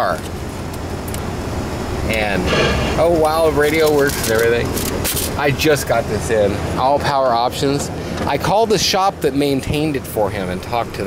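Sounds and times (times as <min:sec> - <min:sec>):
car interior rumble with hiss: 0:00.0 - 0:11.0.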